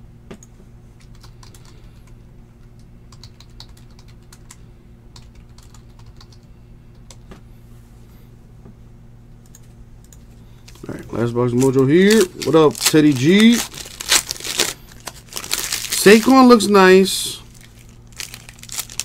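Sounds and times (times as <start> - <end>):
low electrical hum: 0.0 - 19.0.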